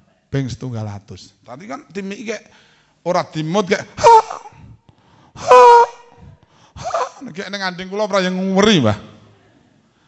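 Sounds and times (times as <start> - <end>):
man's high-pitched exclamation: 4.0 - 4.8, 5.4 - 7.2.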